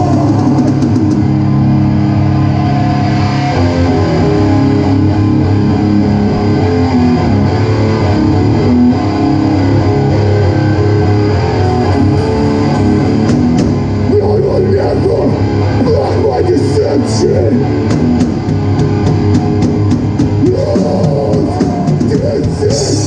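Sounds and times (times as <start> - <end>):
heavy distorted guitar and bass riffing: 0.0 - 23.0.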